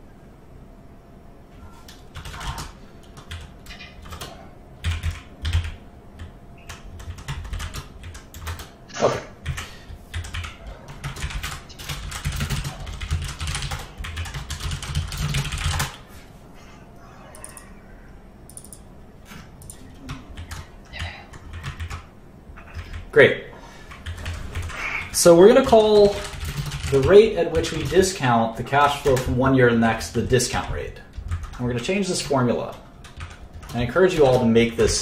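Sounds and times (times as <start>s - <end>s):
computer keyboard typing: 1.8s - 8.8s, 9.4s - 16.0s, 17.3s - 17.7s, 18.5s - 18.9s, 19.6s - 23.1s, 23.9s - 35.0s.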